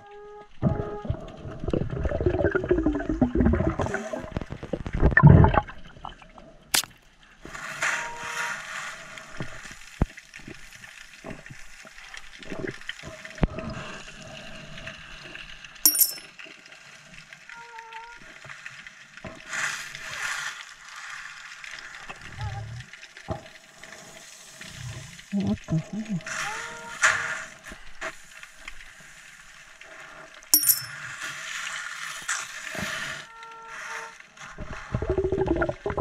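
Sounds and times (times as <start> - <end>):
underwater bubbling and gurgling: 0.0 - 15.8, 16.4 - 30.5, 31.2 - 36.0.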